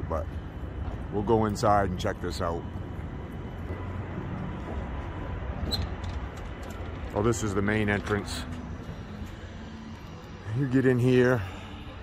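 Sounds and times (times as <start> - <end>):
faint hum: 0.0 - 12.0
low urban rumble: 0.0 - 12.0.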